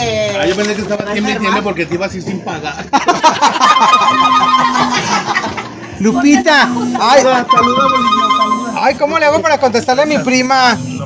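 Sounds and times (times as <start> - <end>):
man laughing loudly: 3.0 - 5.7
held musical notes: 3.7 - 5.4, 7.4 - 9.0.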